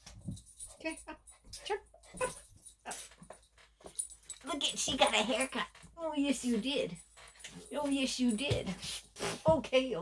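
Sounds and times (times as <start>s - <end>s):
woman talking: 4.4s - 7.0s, 7.6s - 8.8s, 9.4s - 10.0s.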